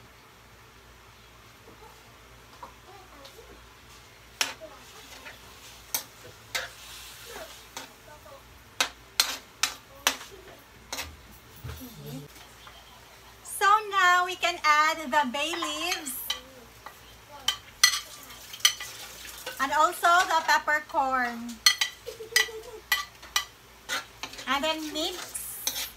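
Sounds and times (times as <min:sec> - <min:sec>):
sauce simmering: 0:16.6 - 0:20.1
metal ladle scraping a wok: 0:23.8 - 0:25.9.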